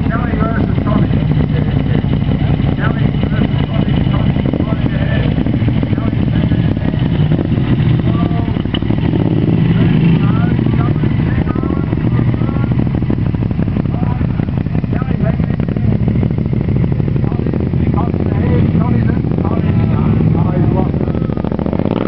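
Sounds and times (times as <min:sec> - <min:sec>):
motorcycle engines at low revs: 0:00.0 - 0:22.0
onlookers' voices: 0:00.0 - 0:22.0.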